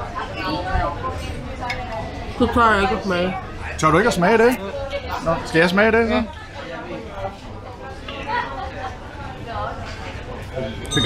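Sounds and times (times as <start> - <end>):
indistinct talking: 0.0 - 11.0.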